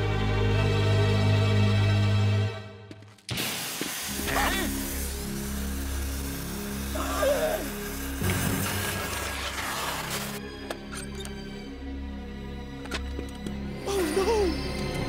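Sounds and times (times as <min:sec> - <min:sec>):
long even hiss: 0:03.3 - 0:10.4.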